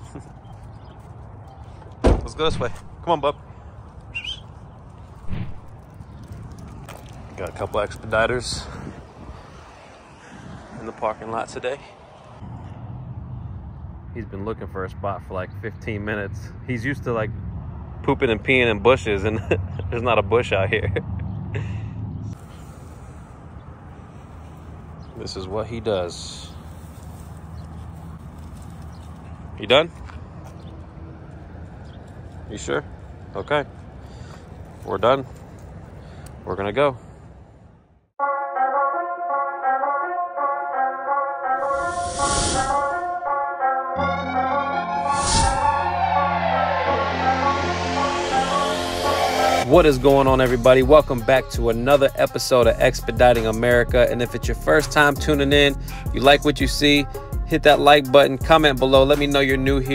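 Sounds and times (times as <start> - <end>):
bird chirp: 0.2 - 1.8, 4.1 - 4.8
muffled thump: 2.0 - 2.9.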